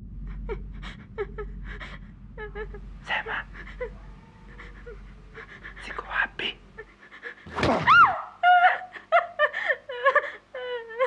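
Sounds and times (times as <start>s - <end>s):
person panting: 0.8s - 7.5s
whimpering gasps: 3.1s - 7.5s.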